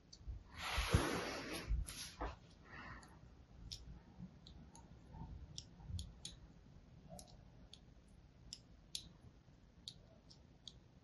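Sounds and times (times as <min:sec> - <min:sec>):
needle tool clicking on soap: 0:03.0 - 0:04.9, 0:05.5 - 0:06.4, 0:07.1 - 0:09.2.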